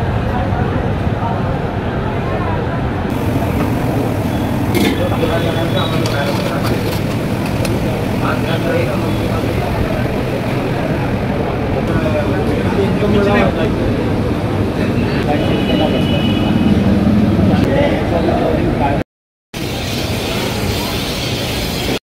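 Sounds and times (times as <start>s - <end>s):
traffic rumble: 0.1s - 19.0s
indistinct voices: 3.1s - 19.0s.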